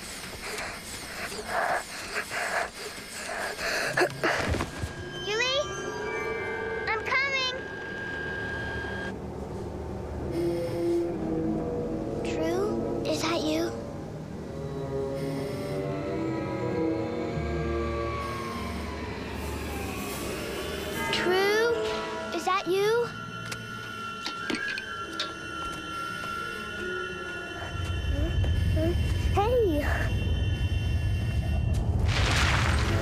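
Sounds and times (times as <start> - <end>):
tense drama background score: 0.0 - 33.0.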